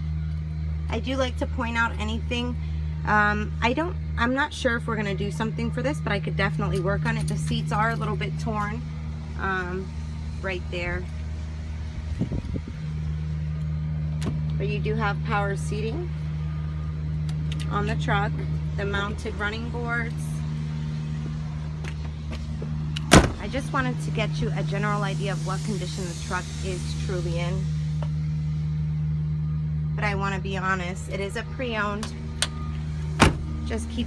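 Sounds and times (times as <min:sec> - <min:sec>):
truck engine idling: 0:00.0 - 0:34.0.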